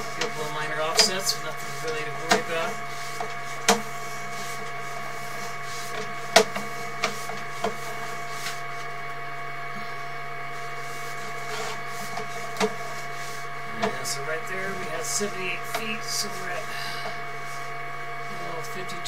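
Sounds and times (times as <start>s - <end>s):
electrical whine and hum: 0.0s - 19.0s.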